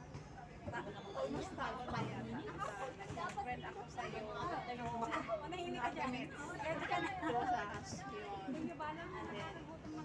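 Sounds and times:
women talking: 0:00.7 - 0:10.0.

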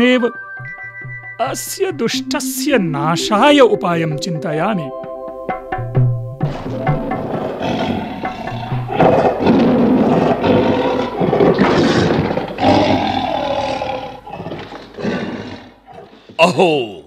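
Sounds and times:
lion roaring: 0:06.4 - 0:16.4.

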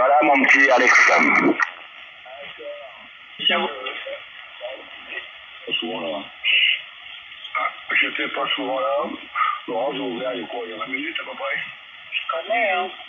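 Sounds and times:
radio static: 0:00.0 - 0:02.1
faint broken radio voices: 0:00.0 - 0:13.0.

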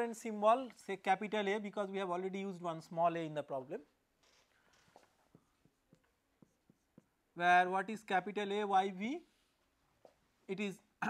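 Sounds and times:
marker pen ticking on whiteboard: 0:04.6 - 0:07.4.

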